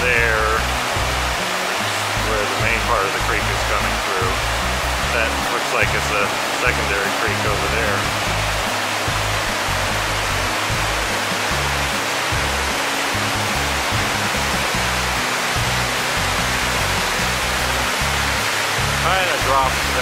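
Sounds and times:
background music with bass: 0:00.0 - 0:20.0
waterfall roaring: 0:00.0 - 0:20.0.

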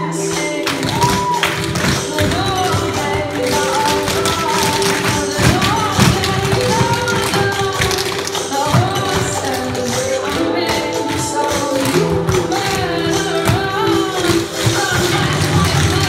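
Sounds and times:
recorded music: 0:00.0 - 0:16.0
tap shoes on wooden floor: 0:00.6 - 0:16.0.

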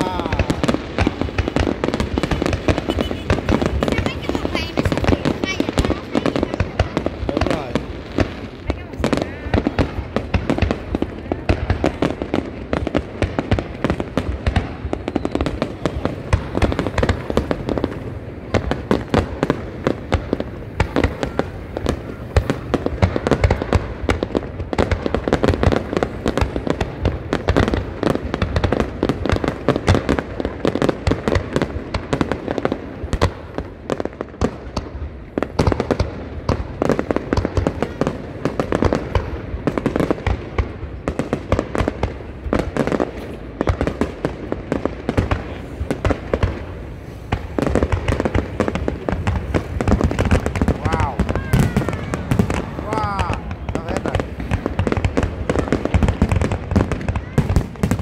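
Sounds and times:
fireworks bursts and crackle: 0:00.0 - 0:58.0.

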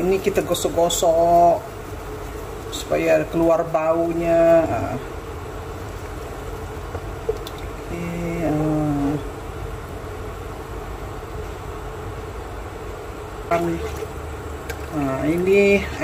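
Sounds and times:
broth heating in a wok: 0:00.0 - 0:16.0
induction cooker humming: 0:00.0 - 0:16.0.

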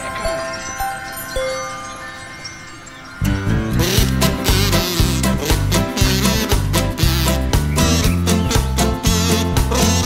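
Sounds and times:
chime tones ringing: 0:00.0 - 0:03.8.

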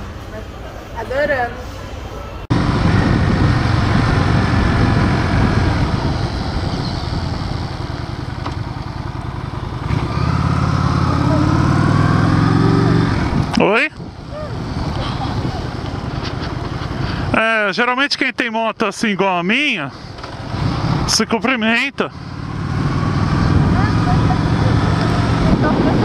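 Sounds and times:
motorcycle engine running: 0:02.5 - 0:17.1, 0:22.1 - 0:26.0.

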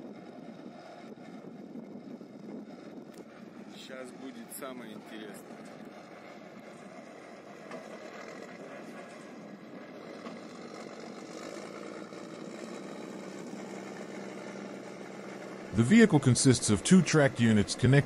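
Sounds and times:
tracked vehicle engine running: 0:00.0 - 0:18.0.

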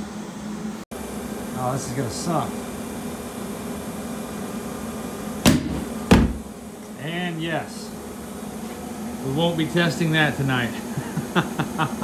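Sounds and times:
steady blower noise: 0:00.0 - 0:12.0
burner explosive bang: 0:05.4 - 0:06.5.

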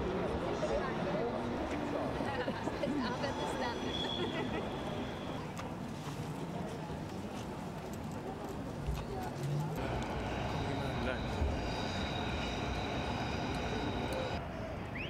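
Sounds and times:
low traffic rumble: 0:04.0 - 0:15.0
indistinct voices: 0:09.4 - 0:14.5
faint high whine: 0:09.8 - 0:15.0.

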